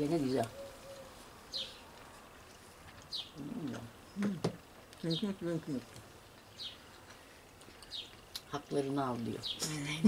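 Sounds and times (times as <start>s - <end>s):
faint bird chirping: 0.2s - 2.0s.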